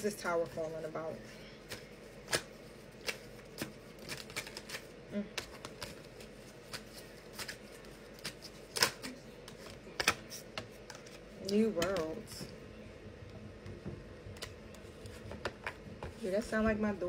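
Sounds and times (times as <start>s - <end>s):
cards being shuffled: 1.7s - 12.1s.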